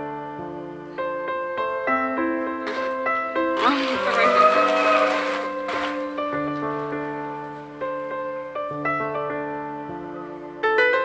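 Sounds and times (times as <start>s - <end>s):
gentle piano music: 0.0s - 11.0s.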